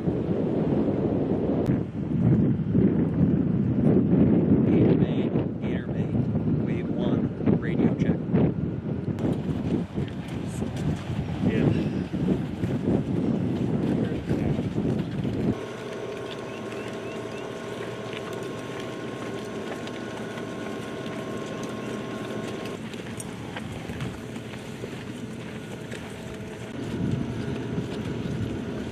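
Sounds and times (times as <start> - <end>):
wind buffeting microphone: 0.0 - 28.9
vehicle engine drone: 6.7 - 28.9.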